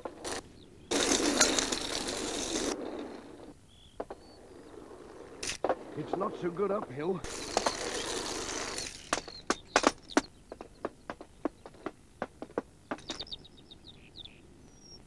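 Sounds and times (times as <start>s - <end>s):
rustling rush: 0.0s - 13.3s
roller skates clacking on stone: 0.0s - 13.4s
birds chirping: 0.0s - 15.0s.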